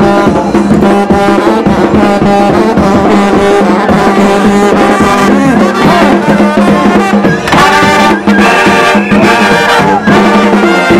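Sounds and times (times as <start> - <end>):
brass band playing loudly: 0.0 - 10.9.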